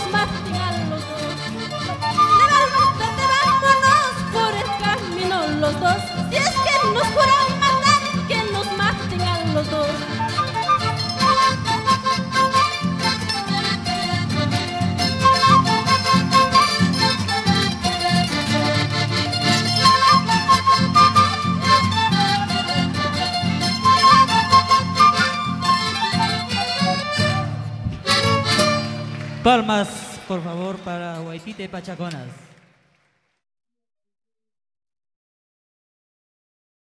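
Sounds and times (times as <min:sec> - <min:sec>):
live folk band playing dance music: 0:00.0 - 0:31.6.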